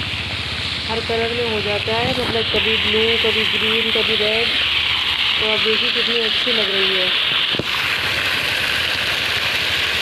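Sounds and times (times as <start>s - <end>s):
fountain water jets splashing: 0.0s - 10.0s.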